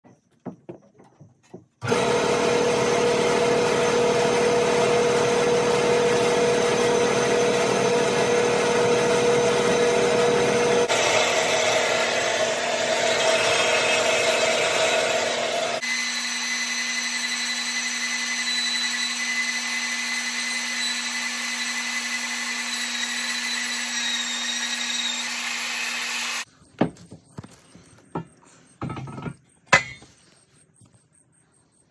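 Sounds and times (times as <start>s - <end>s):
electric power tool on steel: 1.8s - 26.5s
metal-cutting band saw: 1.8s - 26.5s.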